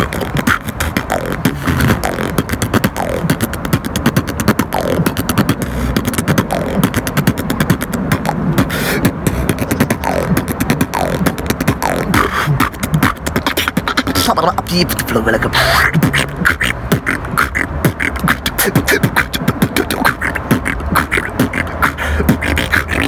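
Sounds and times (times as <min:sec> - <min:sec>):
beatboxing: 0:00.0 - 0:23.0.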